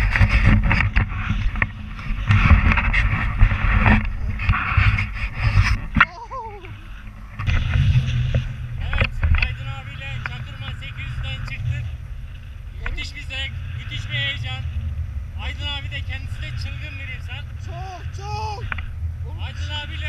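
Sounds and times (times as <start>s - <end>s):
wind buffeting microphone: 0.0s - 16.8s
man yelling in fright: 6.1s - 6.7s, 17.7s - 18.7s.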